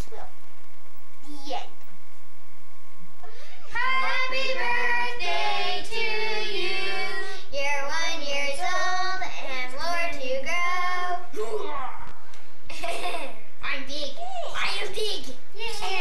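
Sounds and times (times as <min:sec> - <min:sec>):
children singing: 0:03.7 - 0:07.5.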